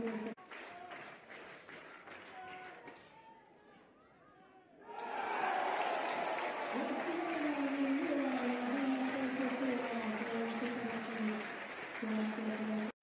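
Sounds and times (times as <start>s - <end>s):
spectators applauding and cheering: 0.0s - 3.2s, 4.9s - 13.0s.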